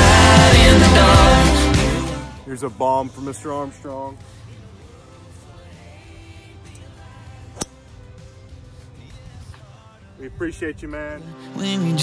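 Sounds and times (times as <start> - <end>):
background song: 0.0 - 2.6, 3.2 - 10.4, 11.2 - 12.0
golf club striking ball: 7.6 - 7.8.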